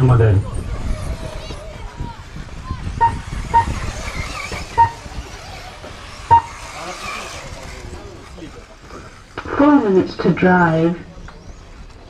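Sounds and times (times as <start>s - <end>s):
electric motor whine: 0.6s - 12.0s
short beeps: 3.0s - 3.8s, 4.8s - 5.0s, 6.3s - 6.6s.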